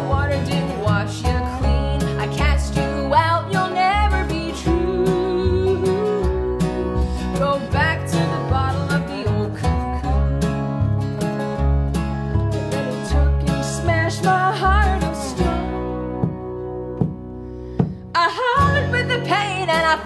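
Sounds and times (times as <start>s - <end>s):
acoustic bluegrass band music: 0.0s - 20.0s
guitar: 0.0s - 20.0s
plucked upright bass: 0.0s - 20.0s.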